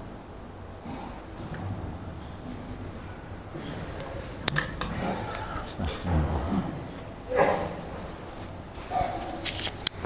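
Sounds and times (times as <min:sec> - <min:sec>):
low voices of people: 0:00.8 - 0:08.0.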